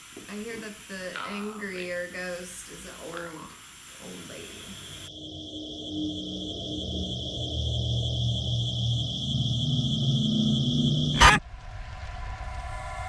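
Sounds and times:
low rumbling drone: 4.0 - 13.0
high ringing tone: 5.0 - 11.4.

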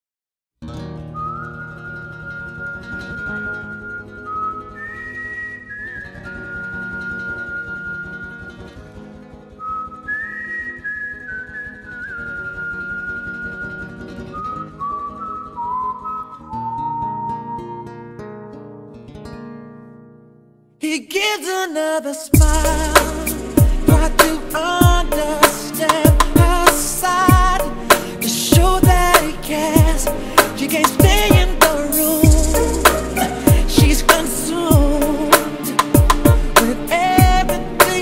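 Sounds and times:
whistle-like melody: 1.0 - 8.8, 9.5 - 18.2, 22.4 - 38.0
plucked accompaniment: 22.4 - 38.0.

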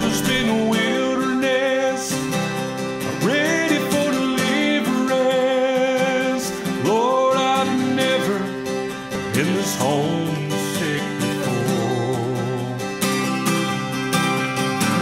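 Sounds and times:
man singing: 0.0 - 13.4
acoustic guitar strumming: 0.0 - 15.0.

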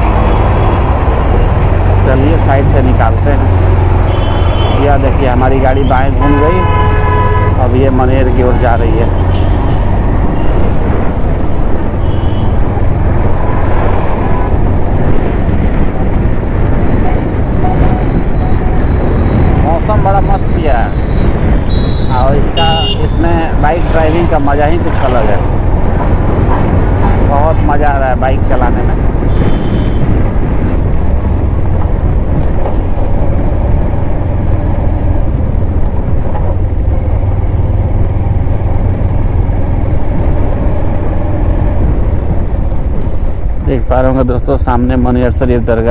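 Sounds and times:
passing traffic: 0.0 - 45.9
vehicle road and wind rumble: 0.0 - 45.9.

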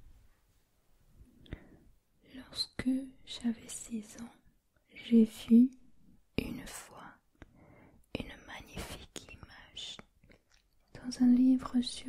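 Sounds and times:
woman whispering: 2.2 - 7.4, 8.1 - 12.0.

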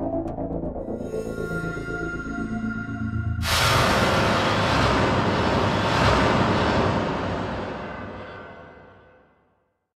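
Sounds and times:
loud rush of noise: 3.4 - 9.3
low rumble: 3.4 - 9.4.

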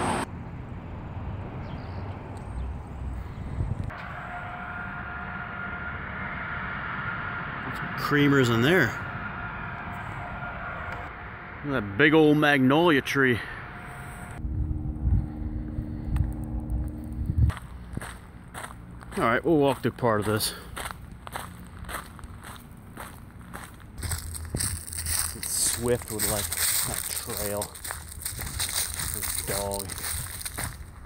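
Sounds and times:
indoor machine hum: 3.9 - 19.2
faint high whine: 3.9 - 19.7
footsteps crunching dry leaves: 17.5 - 31.0
leaves rustling: 24.0 - 31.0.

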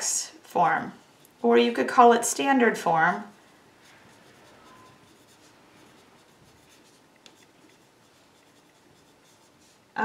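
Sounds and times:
pencil scratching on paper: 2.8 - 9.9.

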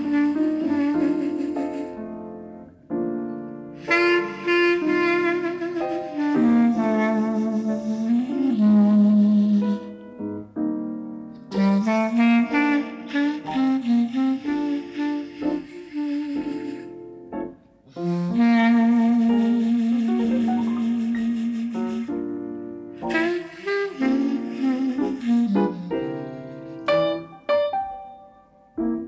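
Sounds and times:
jazz clarinet ballad melody: 0.0 - 29.0
piano accompaniment: 0.0 - 29.0.

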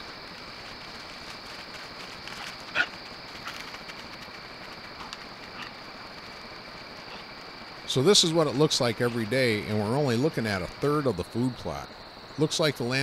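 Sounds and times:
steady high hiss: 0.0 - 13.0.

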